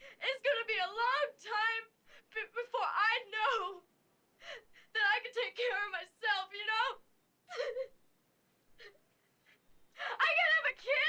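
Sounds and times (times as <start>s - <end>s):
woman sobbing: 7.5s - 8.0s, 8.8s - 9.0s.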